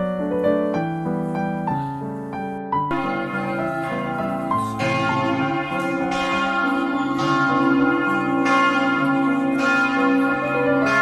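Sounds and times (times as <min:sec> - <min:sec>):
church bells ringing: 0:02.9 - 0:11.0.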